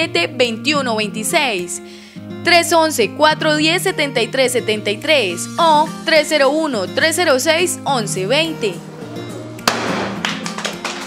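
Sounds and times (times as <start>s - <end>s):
background music: 0.0s - 11.0s
confetti cannon pop: 9.6s - 10.6s
people clapping: 9.6s - 11.0s.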